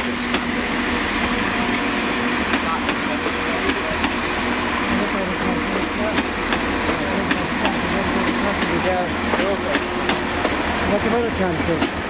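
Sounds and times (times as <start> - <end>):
train engine humming: 0.0 - 12.0
people talking: 2.6 - 4.1, 4.9 - 6.3, 6.9 - 9.9, 10.9 - 12.0.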